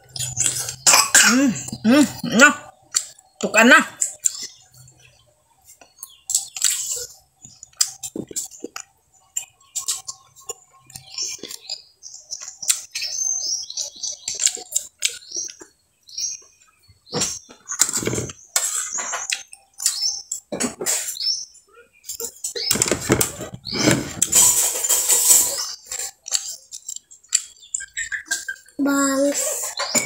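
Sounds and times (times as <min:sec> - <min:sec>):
high squeaks and clicks: 0:00.0 - 0:01.0, 0:04.0 - 0:16.6, 0:17.2 - 0:30.0
wet chewing and smacking: 0:05.7 - 0:11.8, 0:14.1 - 0:15.8
clatter and rustling: 0:22.6 - 0:27.5.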